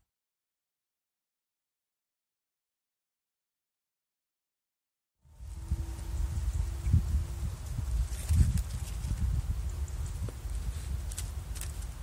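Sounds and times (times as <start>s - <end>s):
leaves rustling: 5.2s - 12.0s.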